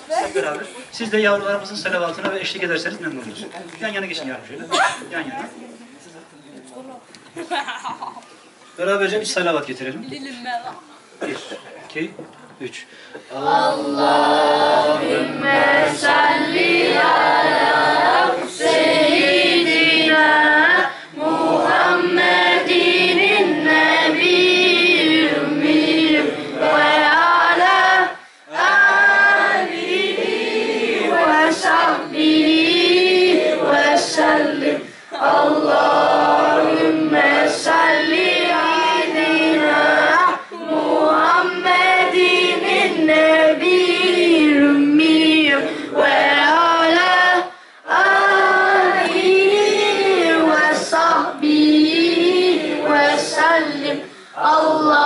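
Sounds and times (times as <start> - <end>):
young voices singing together: 13.1 - 55.0.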